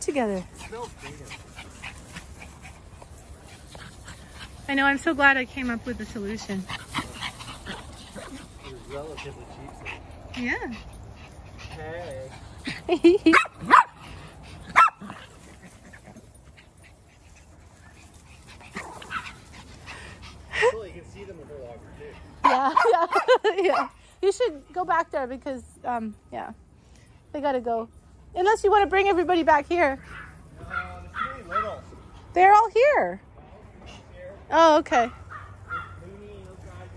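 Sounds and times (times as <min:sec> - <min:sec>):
dog barking: 0:13.3 - 0:14.0, 0:14.7 - 0:15.0, 0:30.1 - 0:31.8, 0:35.1 - 0:36.0.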